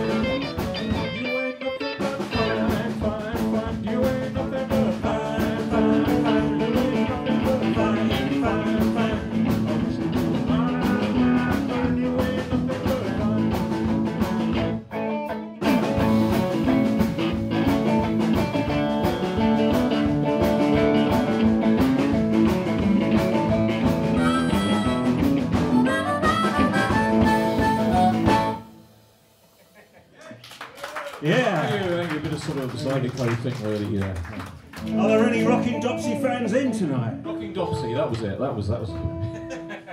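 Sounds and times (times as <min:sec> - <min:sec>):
live blues band: 0:00.0 - 0:29.9, 0:32.0 - 0:39.9
harmonica wailing: 0:23.0 - 0:29.7.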